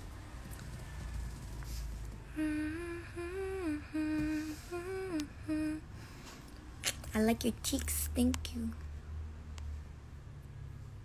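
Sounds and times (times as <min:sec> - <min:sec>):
woman humming a tune: 0:02.3 - 0:05.9.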